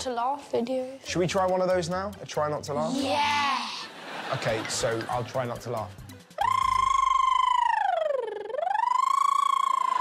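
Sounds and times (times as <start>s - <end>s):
boy making high-pitched vocal tone: 2.8s - 3.9s.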